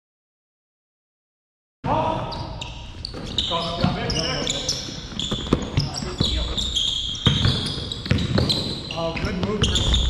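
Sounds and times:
sneakers squeaking on floor: 0:02.1 - 0:10.0
basketball bouncing on hardwood: 0:07.2 - 0:08.7.

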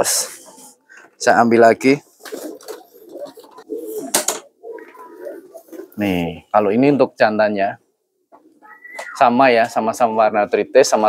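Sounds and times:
pigeons cooing: 0:02.0 - 0:06.4, 0:08.3 - 0:09.4.

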